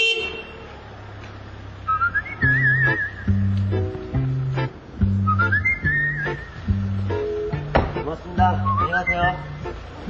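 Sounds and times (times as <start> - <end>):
wavering whistle-like melody: 1.8 - 3.5, 5.2 - 6.8, 8.5 - 9.6
plucked bass notes: 2.0 - 10.0.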